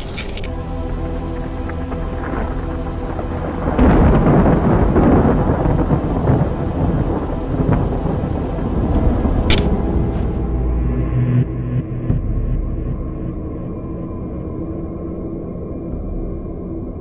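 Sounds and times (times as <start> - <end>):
music drone: 0.4 - 17.0
thunder clap rumbling: 2.0 - 13.4
sharp thunder crack: 3.6 - 10.4.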